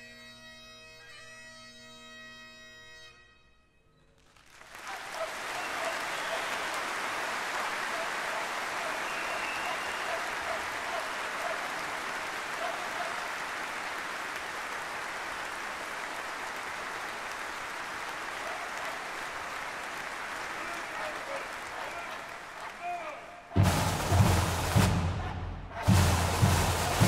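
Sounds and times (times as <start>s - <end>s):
large audience applauding: 4.2s - 27.0s.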